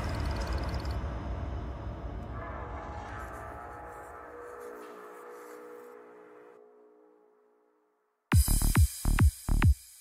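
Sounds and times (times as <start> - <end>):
heavy electronic kick drums: 8.3 - 9.9
psytrance electronic music: 8.3 - 10.0.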